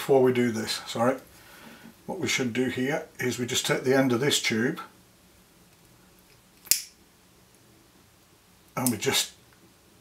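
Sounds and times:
lighter click: 6.6 - 7.0.

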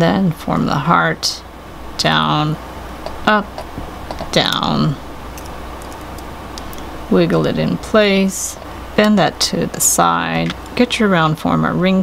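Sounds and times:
low hum: 0.0 - 12.0
pliers clicking on wire: 5.4 - 6.9.

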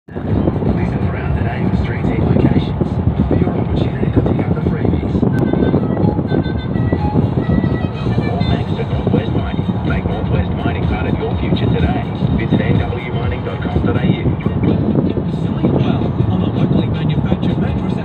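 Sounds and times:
faint voices or music: 0.1 - 18.0
fluttering wind noise: 0.1 - 18.0
road and tyre rumble: 0.1 - 18.0.

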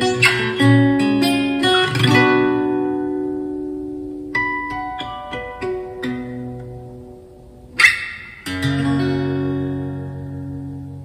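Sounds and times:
fingerstyle acoustic guitar: 0.0 - 11.0
percussive hit on guitar strings: 7.8 - 8.6.

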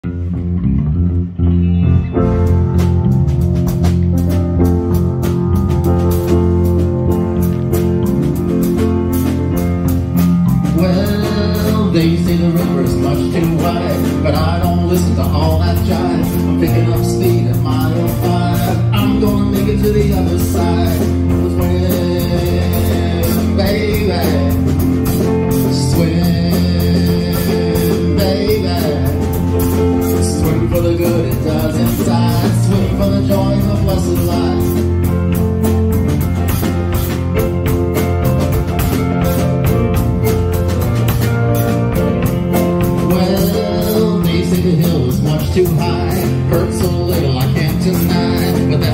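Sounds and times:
electric bass guitar low notes: 0.0 - 48.9
drum kit with cymbal hits: 2.2 - 48.9
man singing: 10.6 - 35.2, 42.8 - 48.9.

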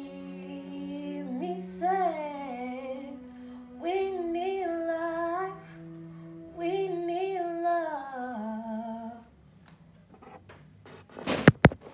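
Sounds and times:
woman singing wordless note: 0.0 - 9.3.

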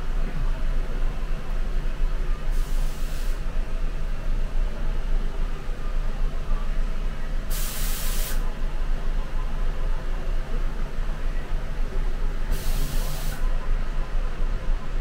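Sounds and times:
bus engine rumble: 0.0 - 15.0
air brake hiss: 2.5 - 3.4, 7.5 - 8.4, 12.5 - 13.4.

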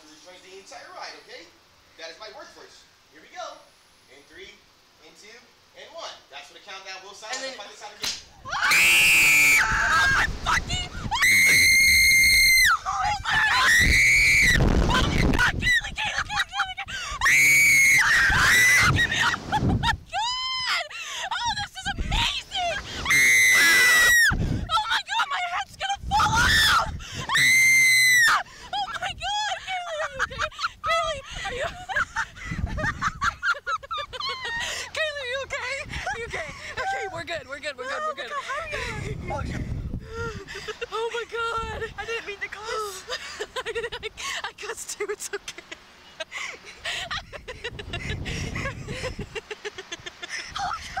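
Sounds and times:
wind on microphone: 8.4 - 12.3, 13.1 - 16.4, 17.9 - 20.2, 21.5 - 23.2, 24.2 - 24.8, 25.8 - 27.4, 30.1 - 33.4, 38.6 - 40.8, 47.1 - 49.4
women screaming: 8.4 - 32.2, 33.8 - 35.1
people laughing: 14.8 - 17.3, 18.2 - 20.3, 28.7 - 35.0, 40.3 - 51.0.

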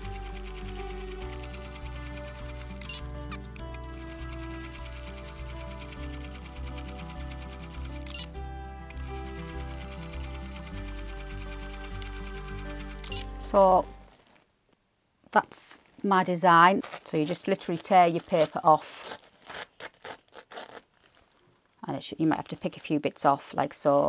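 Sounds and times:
sewing machine running: 0.0 - 3.0, 3.9 - 8.3, 9.0 - 13.3
background music: 0.0 - 14.2.

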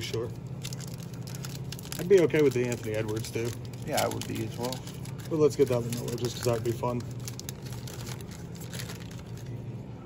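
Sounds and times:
foil wrapper crinkling: 0.0 - 9.8.

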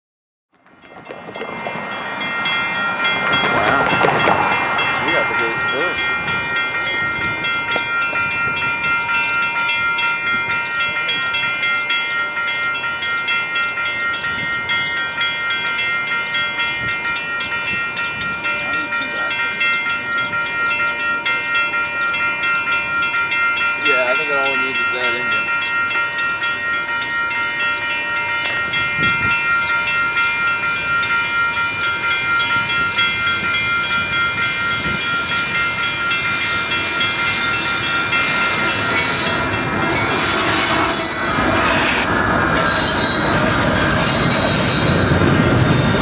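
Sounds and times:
railroad crossing bell ringing: 0.6 - 46.0.

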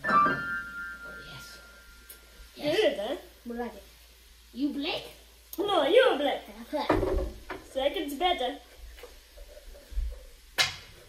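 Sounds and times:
pool cue striking ball: 10.6 - 11.0.

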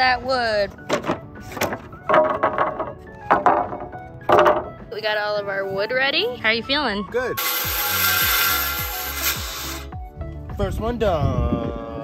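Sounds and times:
wooden boards knocking: 0.8 - 4.8.

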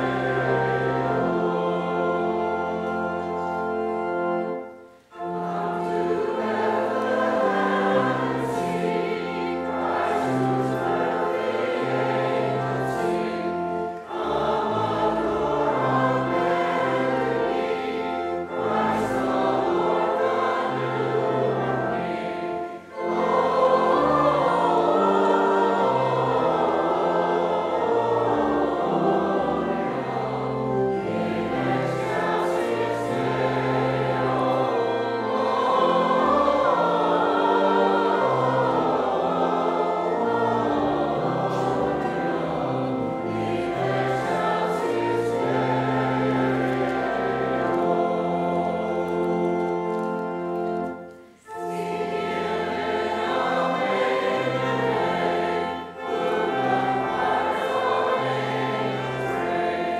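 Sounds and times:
church choir singing a hymn: 0.0 - 59.9
pipe organ: 0.0 - 59.9.

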